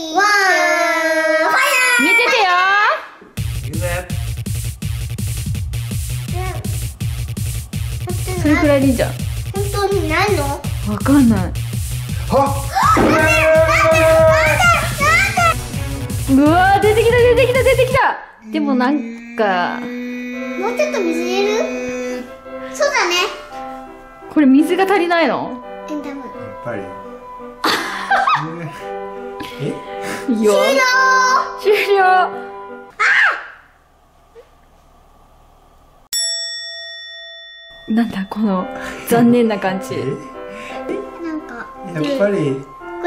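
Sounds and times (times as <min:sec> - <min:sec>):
children calling out: 0:00.0 - 0:02.4, 0:12.7 - 0:15.6, 0:32.9 - 0:33.7
music with steady beat: 0:03.4 - 0:18.0
bell-like ding: 0:36.1 - 0:38.6.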